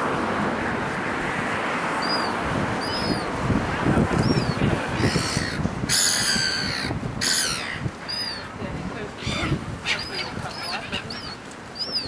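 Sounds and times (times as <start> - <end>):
gulls calling: 2.0 - 12.0.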